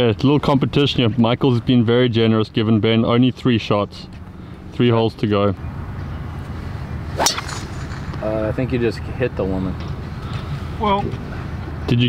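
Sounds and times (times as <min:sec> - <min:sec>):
golf club swish and strike: 0:07.1 - 0:08.5.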